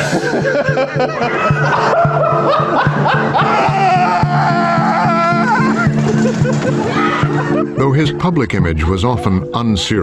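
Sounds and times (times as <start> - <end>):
man laughing heartily: 0.0 - 7.9
background music with steady beat: 0.0 - 10.0.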